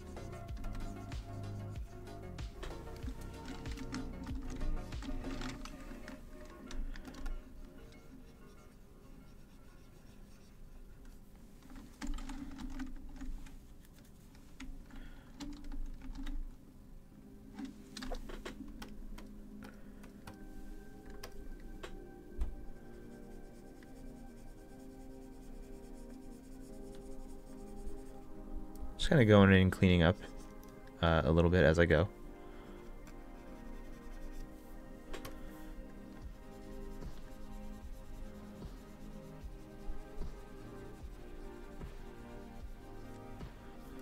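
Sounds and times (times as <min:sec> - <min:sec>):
quiet background music: 0:00.0 - 0:44.0
keyboard keys clicking: 0:02.4 - 0:07.5, 0:11.7 - 0:16.5, 0:21.0 - 0:22.5.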